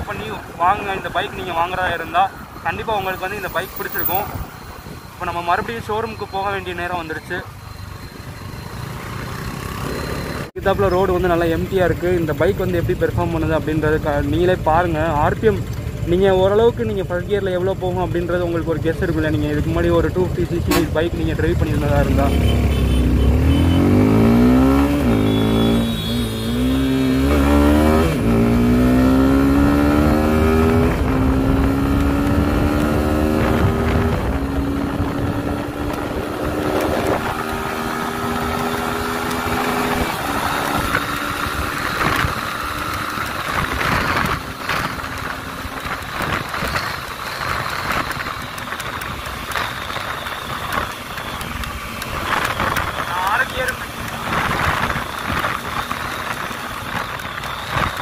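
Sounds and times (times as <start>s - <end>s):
motorcycle engine accelerating: 8.3s - 11.0s, 13.6s - 58.0s
wind buffeting on microphone: 30.7s - 38.6s, 53.8s - 58.0s.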